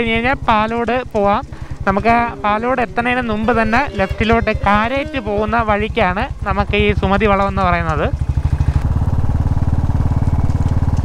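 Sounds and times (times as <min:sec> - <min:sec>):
motorcycle engine running: 0:05.2 - 0:11.0.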